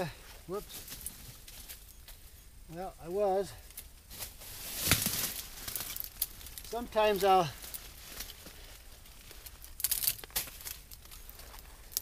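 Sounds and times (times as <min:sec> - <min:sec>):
dry brush rustling: 0:03.6 - 0:12.0
twig snapping: 0:03.7 - 0:06.8, 0:09.3 - 0:12.0.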